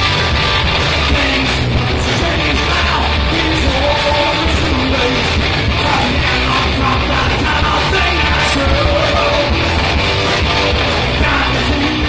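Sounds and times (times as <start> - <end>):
bass guitar: 0.0 - 12.0
drum kit: 0.0 - 12.0
electric guitars: 0.0 - 12.0
lead singer's vocal: 1.0 - 12.0.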